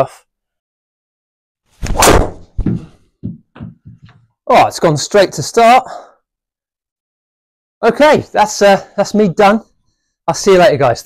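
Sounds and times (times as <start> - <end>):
small thud: 1.8 - 4.2.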